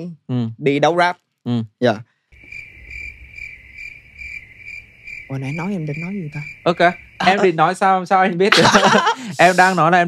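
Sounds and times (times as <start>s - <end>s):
cricket chirping: 2.3s - 10.0s.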